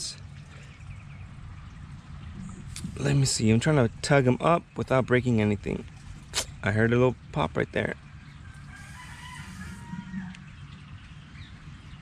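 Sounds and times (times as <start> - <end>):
outdoor background noise: 0.0 - 12.0
distant bird call: 7.8 - 12.0.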